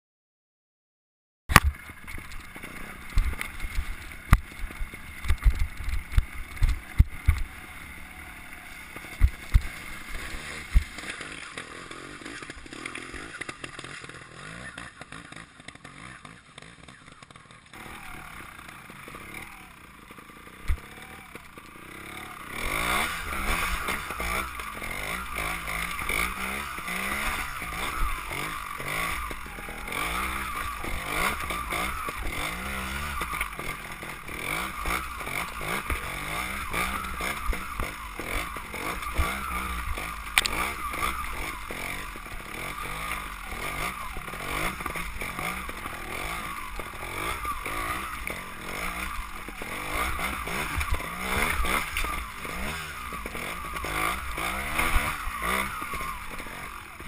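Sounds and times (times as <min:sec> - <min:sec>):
motorcycle engine revving: 0:01.5 - 0:57.0.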